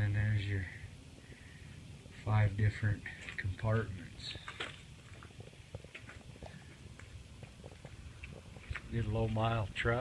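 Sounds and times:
footsteps on dirt: 3.1 - 9.7.

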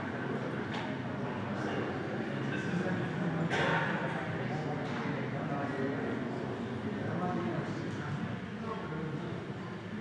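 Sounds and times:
background chatter: 0.0 - 10.0
steady room noise: 0.0 - 10.0.

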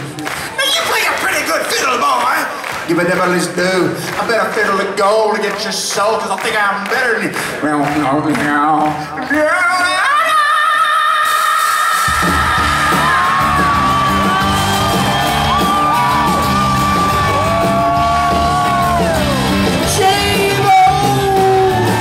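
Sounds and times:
drums: 0.0 - 22.0
man singing yelled vocals: 9.1 - 13.6, 19.8 - 22.0
bass guitar: 12.1 - 22.0.

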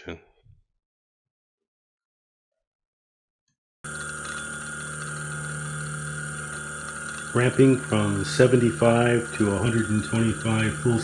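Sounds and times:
motor high whine: 3.9 - 11.0
stepper motor hum: 3.9 - 11.0.

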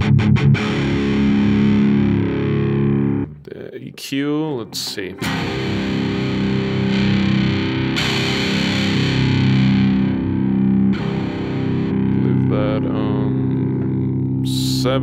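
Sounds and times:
distorted electric guitar chords: 0.0 - 3.6, 4.5 - 15.0.

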